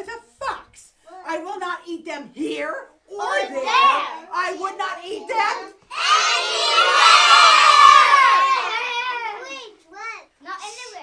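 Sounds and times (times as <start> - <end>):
young children shouting: 5.9 - 9.8.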